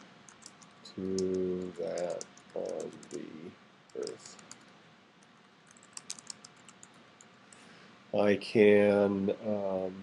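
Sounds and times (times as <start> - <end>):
computer keyboard typing: 0.3 - 3.3, 3.9 - 4.6, 5.7 - 7.6.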